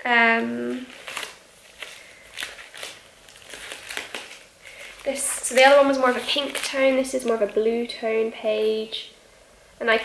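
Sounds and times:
paper pages rustling: 0.7 - 7.6.

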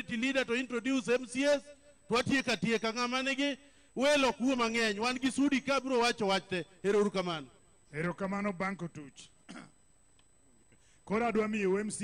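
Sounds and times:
person clearing throat: 9.4 - 9.8.

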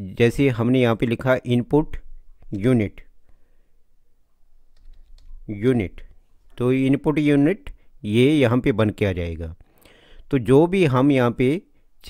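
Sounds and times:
typing on computer keyboard: 4.7 - 5.4.

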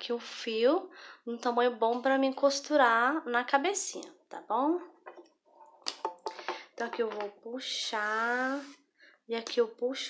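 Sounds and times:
woman speaking softly: 6.8 - 10.0.

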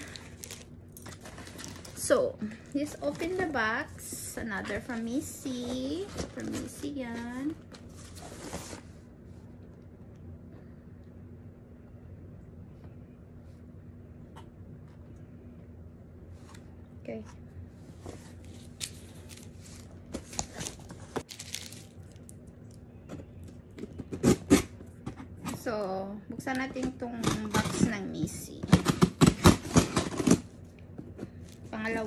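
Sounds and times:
steady low hum: 0.0 - 32.0
cardboard rustling: 2.8 - 8.9, 18.1 - 22.2.

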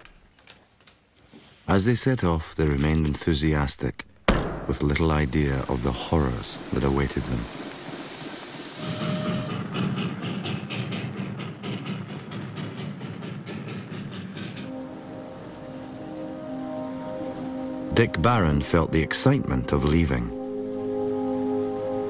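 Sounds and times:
train wheels clickety-clack: 4.7 - 15.6.

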